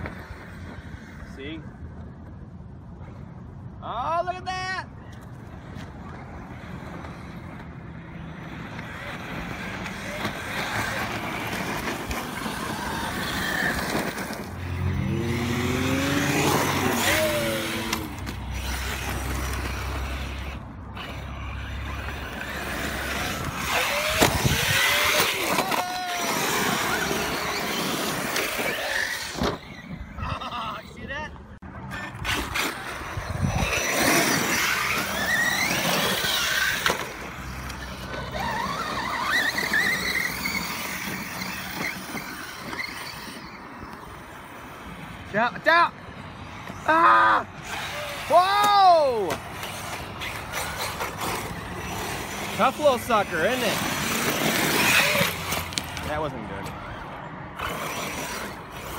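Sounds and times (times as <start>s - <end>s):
electric motors whining: 6.2s - 30.5s, 31.9s - 45.0s, 46.5s - 58.9s
tyres scrabbling in dirt: 8.6s - 31.0s, 31.8s - 45.4s, 47.6s - 57.0s.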